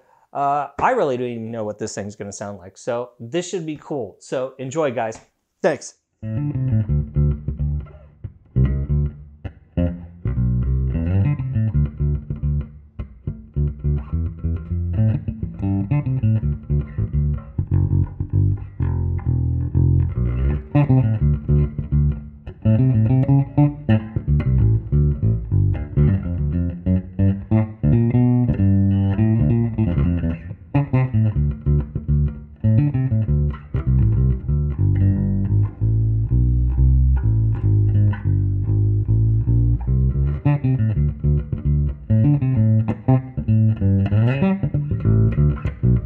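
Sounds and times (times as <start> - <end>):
electric bass plucked: 6.2 - 46.0.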